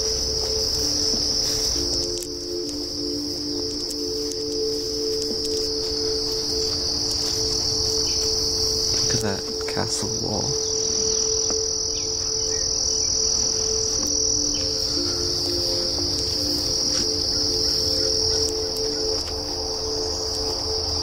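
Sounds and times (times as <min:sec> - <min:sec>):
faint low sustained notes: 0:00.0 - 0:21.0
insects trilling: 0:00.0 - 0:21.0.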